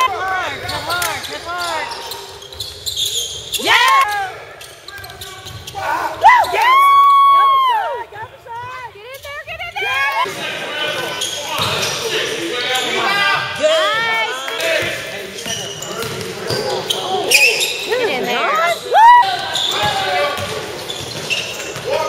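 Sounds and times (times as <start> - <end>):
sneakers squeaking on gym floor: 0.0 - 6.6, 11.0 - 13.1, 14.7 - 22.0
basketball bouncing: 19.8 - 22.0.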